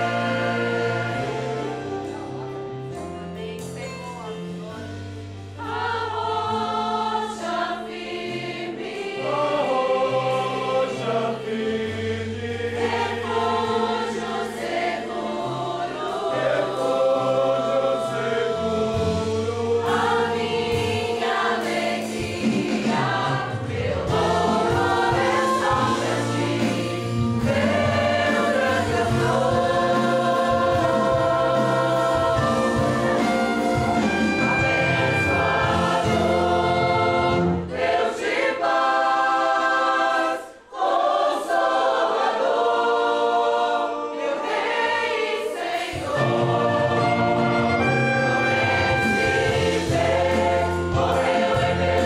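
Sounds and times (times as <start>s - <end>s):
group of voices singing: 0.0s - 2.4s, 5.6s - 52.0s
live church band: 0.0s - 52.0s.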